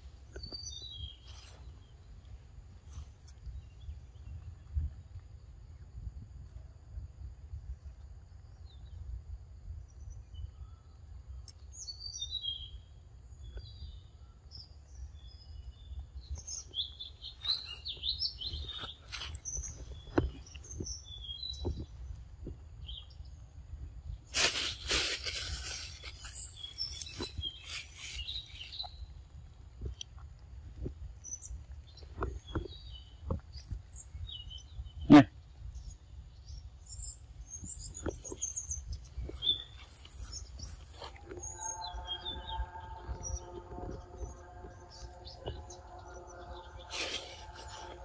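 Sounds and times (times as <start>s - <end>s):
birds chirping: 0.0s - 4.9s, 9.9s - 48.0s
loud rustling and crackling: 24.3s - 28.8s
low steady rumble: 38.7s - 48.0s.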